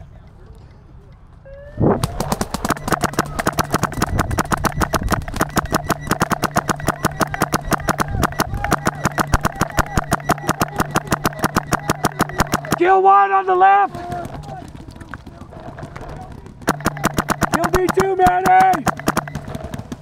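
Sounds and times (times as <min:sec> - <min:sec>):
paintball marker rapid firing: 0:02.0 - 0:13.0, 0:13.9 - 0:20.0.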